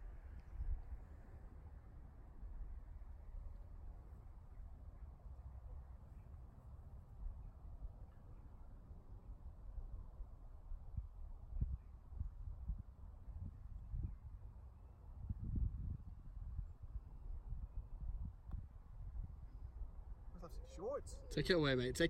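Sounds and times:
wind buffeting microphone: 0:15.1 - 0:22.0.

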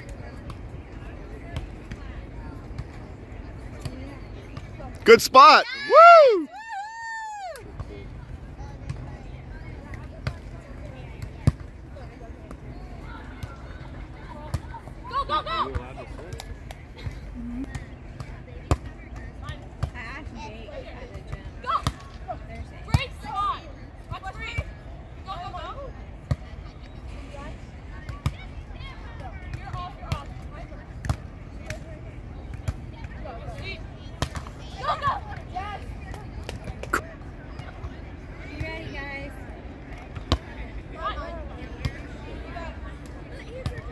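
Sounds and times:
person cheering woo: 0:05.2 - 0:07.5.

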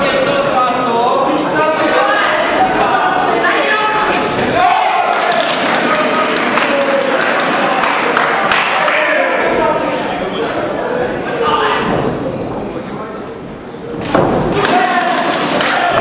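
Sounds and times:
spectators shouting and cheering: 0:01.9 - 0:09.8, 0:14.5 - 0:16.0.

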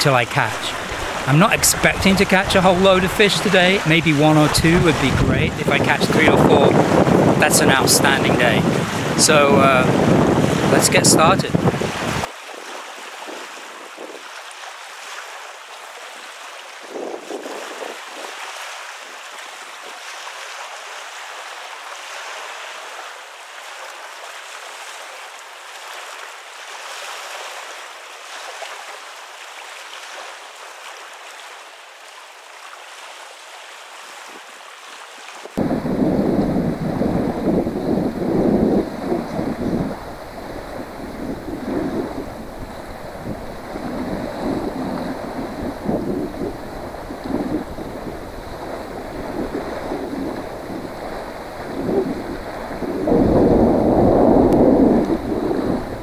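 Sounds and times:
wind buffeting microphone: 0:00.0 - 0:12.3, 0:13.1 - 0:14.3, 0:16.8 - 0:18.4, 0:35.6 - 0:56.0
waves washing on gravel shore: 0:00.0 - 0:31.7, 0:35.2 - 0:56.0.

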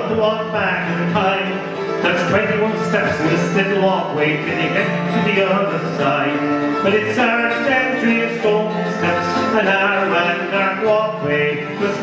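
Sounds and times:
person singing: 0:00.0 - 0:12.0
strummed acoustic guitar: 0:00.0 - 0:12.0.

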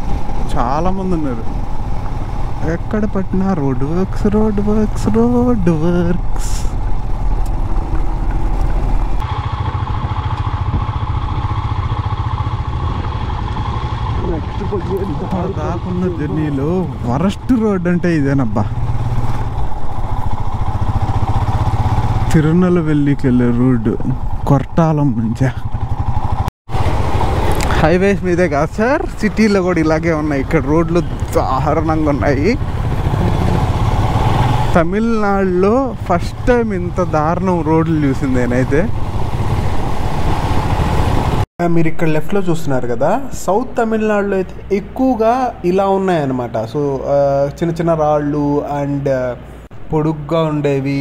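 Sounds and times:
motorcycle engine running: 0:00.0 - 0:41.4
ride noise: 0:00.0 - 0:41.4
man talking: 0:00.5 - 0:01.5, 0:02.6 - 0:06.8, 0:14.2 - 0:18.7, 0:22.3 - 0:25.7, 0:27.6 - 0:32.6, 0:34.8 - 0:38.9, 0:41.6 - 0:51.0
man's voice: 0:02.6 - 0:06.7.

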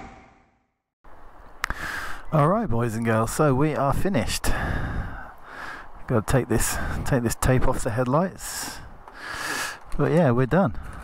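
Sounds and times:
low outdoor background noise: 0:01.1 - 0:11.0.

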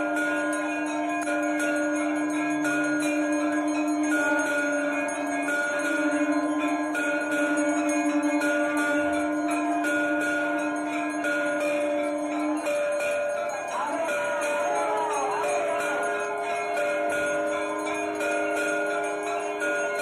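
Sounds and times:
brass bells rung rapidly: 0:00.0 - 0:20.0.

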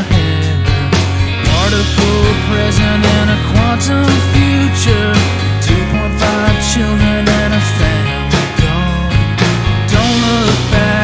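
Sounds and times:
indie rock song: 0:00.0 - 0:11.0.

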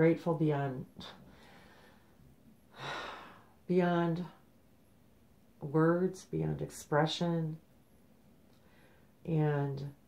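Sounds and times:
woman speaking slowly: 0:00.0 - 0:01.2, 0:03.6 - 0:04.4, 0:05.6 - 0:07.6, 0:09.2 - 0:10.0
woman breathing: 0:01.0 - 0:03.6, 0:08.5 - 0:09.2.

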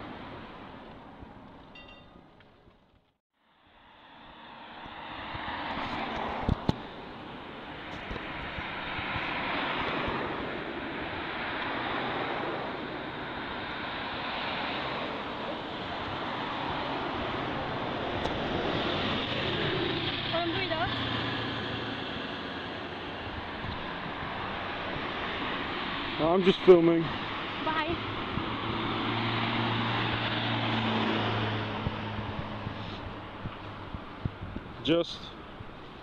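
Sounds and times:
rushing street noise: 0:00.0 - 0:36.0.

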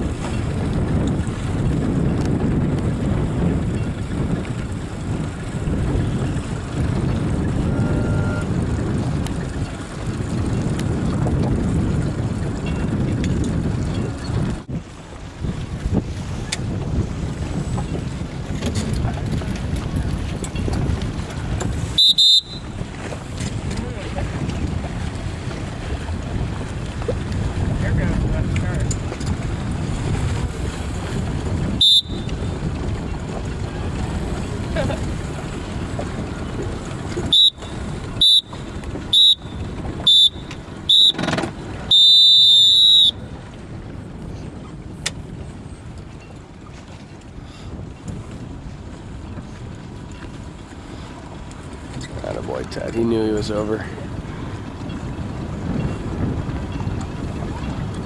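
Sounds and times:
wind noise on microphone: 0:00.0 - 0:58.0
long electronic tone: 0:07.6 - 0:08.5.

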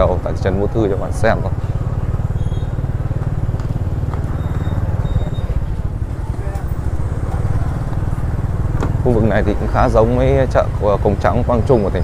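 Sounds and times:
motor scooter engine rumble: 0:00.0 - 0:12.0.

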